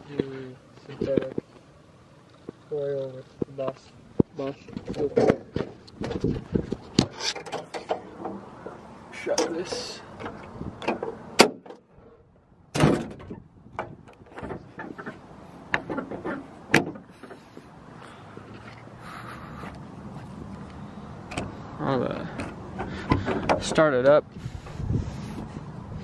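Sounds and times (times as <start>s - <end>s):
metal clunks and clicks: 4.7s - 11.9s, 12.7s - 17.4s, 21.3s - 21.6s, 22.4s - 24.2s.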